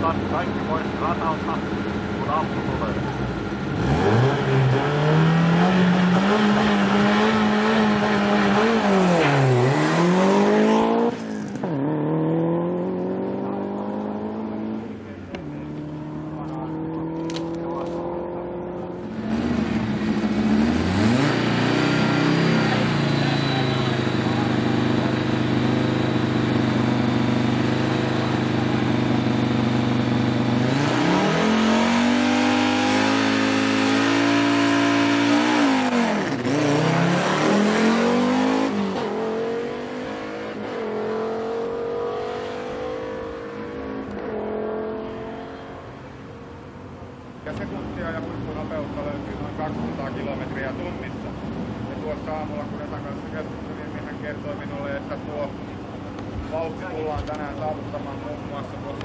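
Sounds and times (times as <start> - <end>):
distant car accelerating: 0.0 - 59.0
rally car engine revving: 0.0 - 59.0.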